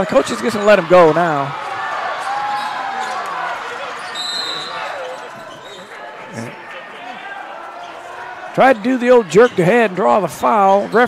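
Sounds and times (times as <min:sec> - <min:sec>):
crowd murmuring and calling out: 0:00.0 - 0:11.0
sneaker squeak: 0:04.0 - 0:06.0.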